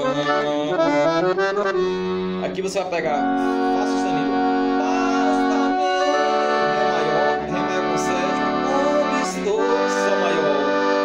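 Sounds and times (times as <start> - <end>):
accordion playing chords: 0.0 - 11.0.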